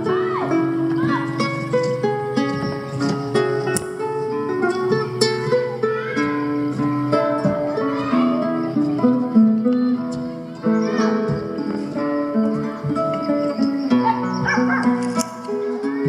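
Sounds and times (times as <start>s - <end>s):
acoustic guitar duet: 0.0s - 16.0s.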